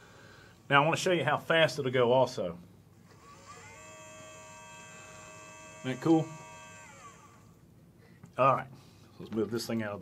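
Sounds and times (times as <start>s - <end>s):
small electric motor whining: 3.0s - 7.6s.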